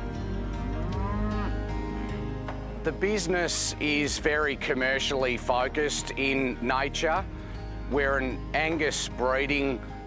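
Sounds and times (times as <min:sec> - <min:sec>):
soft background music: 0:00.0 - 0:10.0
cow mooing: 0:00.6 - 0:02.1.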